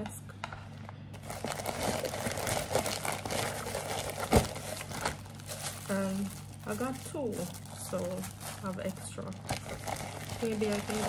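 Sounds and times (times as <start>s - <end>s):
plastic mailer crinkling: 1.0s - 11.0s.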